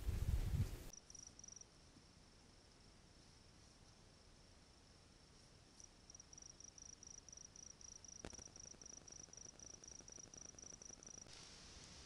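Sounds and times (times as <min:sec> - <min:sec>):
cricket chirping: 0:00.9 - 0:11.6.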